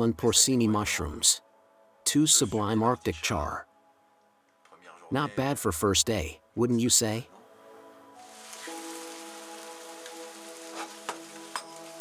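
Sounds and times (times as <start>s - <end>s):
mushrooms sizzling in frying pan: 8.2s - 12.0s.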